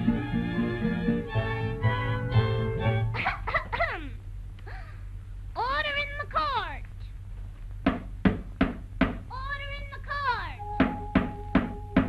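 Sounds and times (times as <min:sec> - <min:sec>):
cartoon orchestral music: 0:00.0 - 0:03.2, 0:10.6 - 0:12.0
wooden gavel knocks: 0:07.8 - 0:09.2, 0:10.8 - 0:12.0
steady held note: 0:10.6 - 0:12.0.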